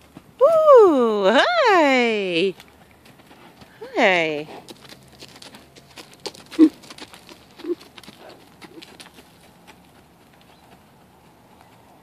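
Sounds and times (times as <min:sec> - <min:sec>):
horse hooves on dry dirt: 0:00.0 - 0:12.0.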